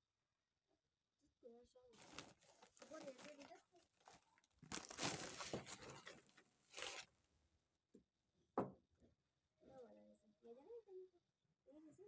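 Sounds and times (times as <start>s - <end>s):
plastic sack rustling: 2.0s - 7.1s.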